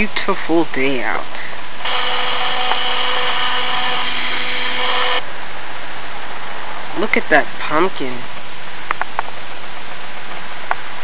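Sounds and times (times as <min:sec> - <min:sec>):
steady hiss: 0:00.0 - 0:11.0
camcorder zoom motor whirring: 0:01.8 - 0:05.2.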